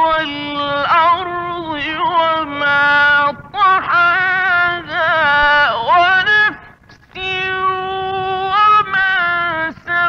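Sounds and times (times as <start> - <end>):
man chanting melodic recitation: 0.0 - 10.0.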